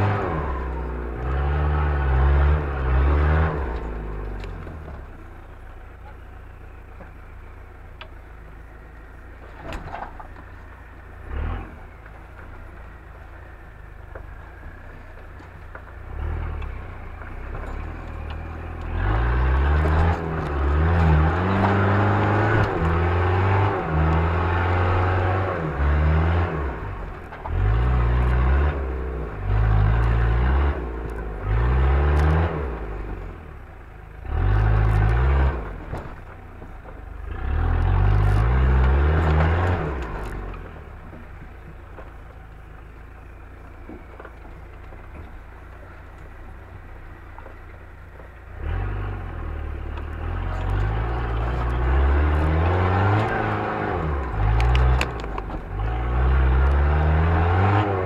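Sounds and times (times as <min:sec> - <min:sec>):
off-road vehicle engine revving: 0:00.0 - 0:58.0.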